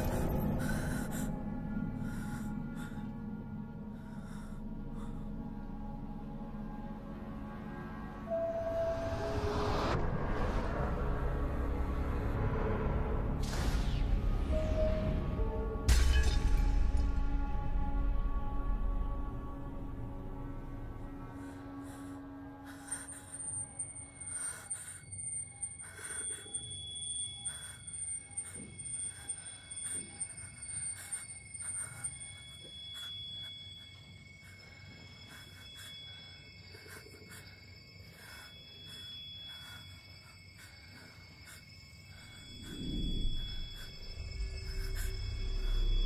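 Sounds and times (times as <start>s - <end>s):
pulsing tone: 22.8s - 46.0s.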